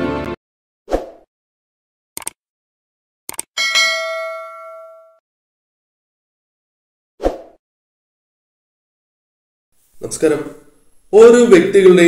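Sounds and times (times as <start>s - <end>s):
mouse double-click: 2.2s - 2.4s, 3.3s - 3.5s
notification bell ding: 3.6s - 5.2s.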